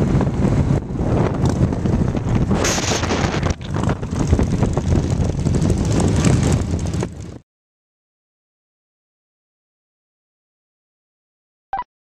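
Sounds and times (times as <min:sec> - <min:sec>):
motorcycle engines rumbling: 0:00.0 - 0:07.4
wind on microphone: 0:00.0 - 0:07.4.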